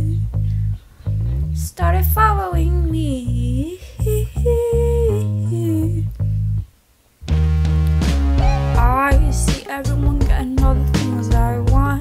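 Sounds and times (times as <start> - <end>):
woman singing pop melody: 0.0 - 0.2, 1.6 - 6.1, 8.4 - 12.0
backing instrumental with bass: 0.0 - 12.0.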